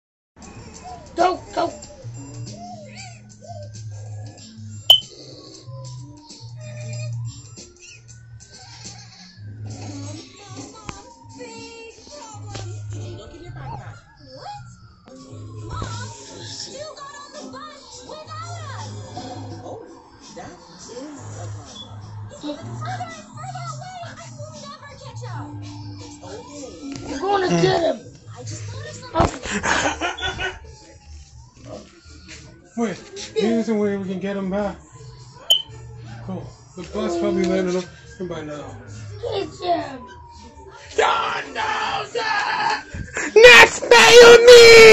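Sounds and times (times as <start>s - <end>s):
light cartoon music: 0.8s - 13.8s, 34.9s - 36.0s
person laughing: 27.4s - 27.9s, 29.5s - 30.5s.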